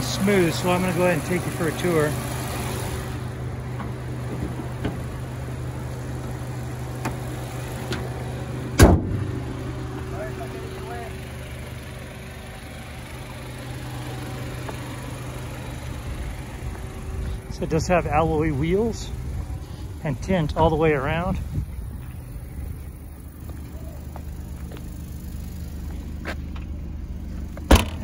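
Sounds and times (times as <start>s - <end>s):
car engine idling: 0.0s - 28.0s
loud thump: 8.8s - 9.2s, 27.7s - 28.0s.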